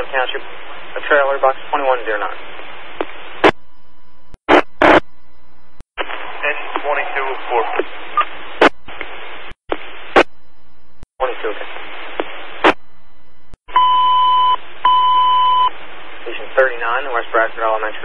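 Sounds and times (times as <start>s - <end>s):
radio hiss bursts: 4.5s - 5.0s, 6.0s - 10.3s, 11.2s - 12.8s
faint garbled radio voice: 6.1s - 7.9s.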